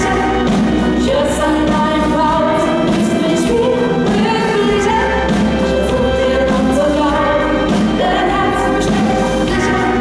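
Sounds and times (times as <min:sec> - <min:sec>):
pop backing with deep bass: 0:00.0 - 0:10.0
women singing in harmony: 0:00.0 - 0:10.0.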